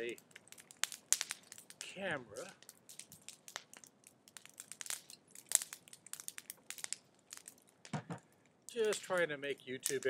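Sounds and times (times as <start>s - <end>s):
sharp crackling clicks: 0.0s - 10.0s.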